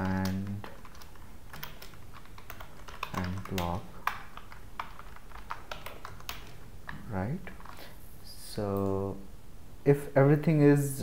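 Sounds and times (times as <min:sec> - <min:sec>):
computer keyboard keys clicking: 0:00.0 - 0:07.9.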